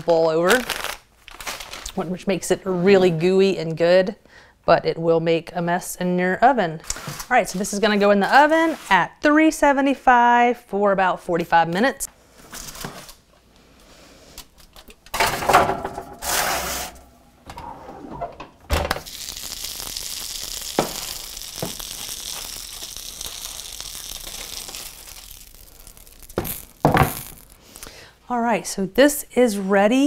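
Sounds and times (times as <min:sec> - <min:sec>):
steady hiss: 0:19.0 - 0:27.8.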